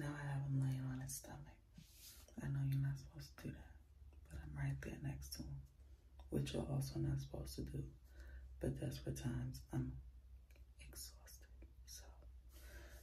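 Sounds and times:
woman talking in hushed voice: 0.0 - 8.0, 8.6 - 10.1, 10.7 - 12.2.

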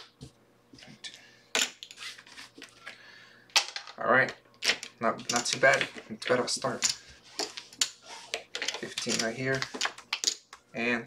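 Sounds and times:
cards and chips clacking: 4.6 - 10.7.

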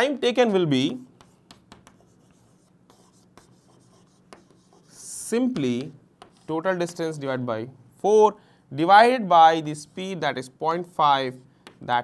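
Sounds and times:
chalk scratching on chalkboard: 1.0 - 7.0.

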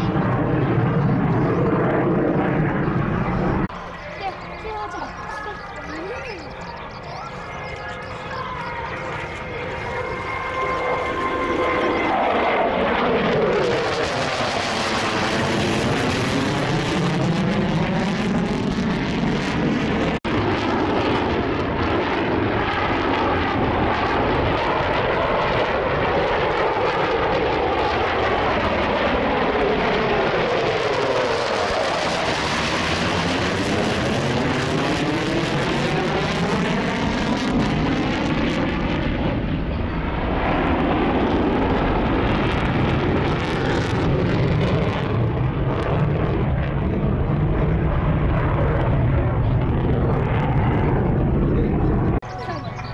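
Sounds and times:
jet engines roaring overhead: 0.0 - 52.9.

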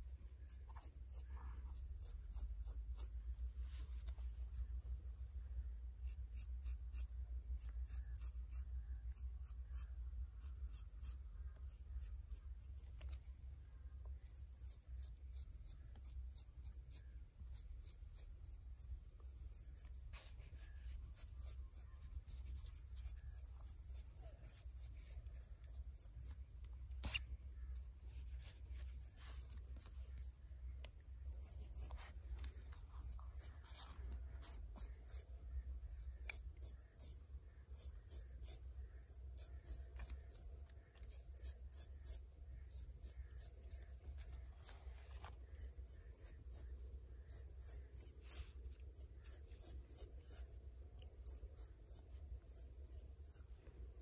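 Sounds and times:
straight razor scraping scalp: 0.4 - 3.1, 6.0 - 12.8, 14.3 - 26.3, 35.9 - 38.6, 41.0 - 44.3, 45.6 - 50.5, 51.2 - 53.5.

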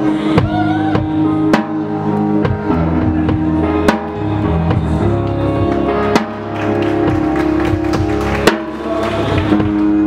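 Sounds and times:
drums: 0.0 - 10.0
drum and cymbal hits: 0.4 - 5.0.

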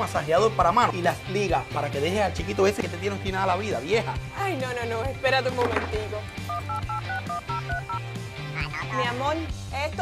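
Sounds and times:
background music with drum beat: 0.0 - 10.0
telephone keypad beeps: 6.5 - 8.0.

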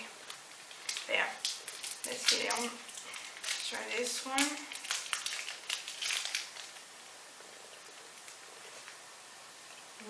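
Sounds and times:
candy wrapper rustling: 0.2 - 7.0.

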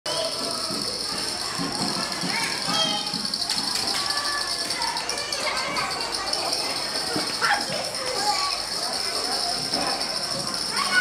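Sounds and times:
indistinct chatter of people: 0.1 - 11.0.

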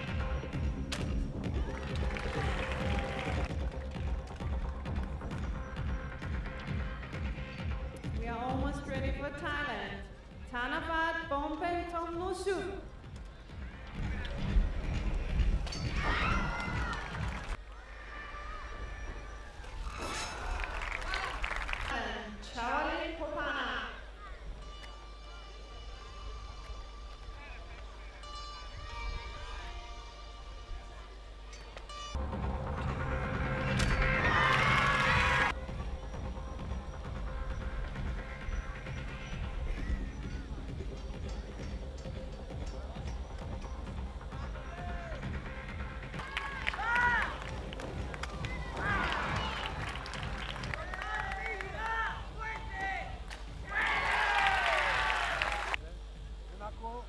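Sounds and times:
background music: 0.0 - 17.7, 19.0 - 57.0
crowd cheering: 1.5 - 4.2, 13.6 - 22.2, 33.3 - 35.6, 44.5 - 55.8.

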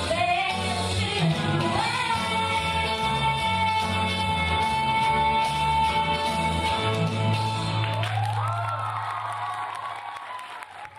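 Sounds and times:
audience clapping and cheering: 7.6 - 10.9
high cheer: 7.9 - 10.9.

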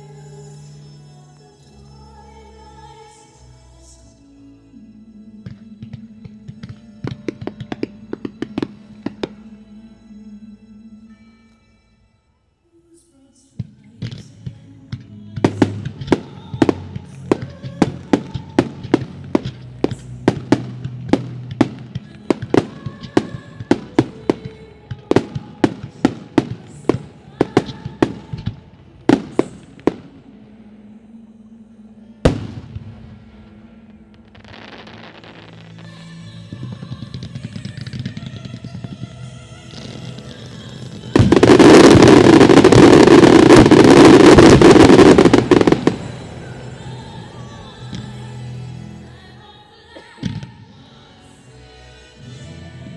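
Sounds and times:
dense fireworks barrage: 15.4 - 30.6, 32.3 - 48.7
fireworks reports: 15.4 - 31.0, 32.2 - 49.0
hissing crackle: 15.4 - 31.0, 32.3 - 49.1.

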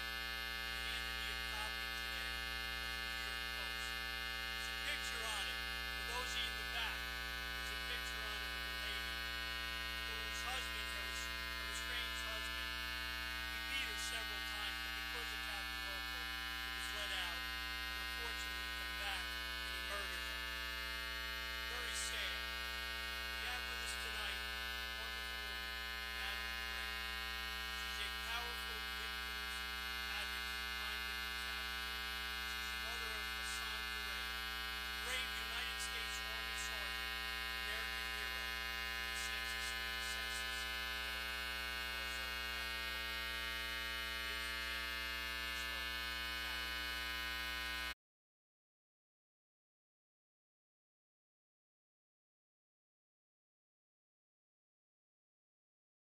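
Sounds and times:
electrical mains hum: 0.0 - 47.9
faint voice: 0.8 - 2.4, 3.0 - 4.0, 4.6 - 9.2, 10.0 - 12.6, 13.6 - 20.4, 21.6 - 22.5, 23.4 - 26.9, 27.7 - 31.7, 32.4 - 34.4, 35.0 - 37.0, 37.6 - 40.8, 41.8 - 43.0, 44.1 - 44.8, 45.4 - 46.8.

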